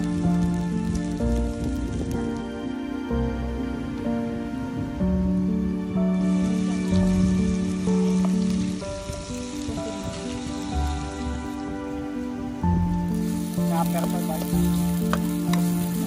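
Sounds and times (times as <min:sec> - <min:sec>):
background music with held notes: 0:00.0 - 0:16.0
fish sizzling in oil: 0:05.5 - 0:16.0.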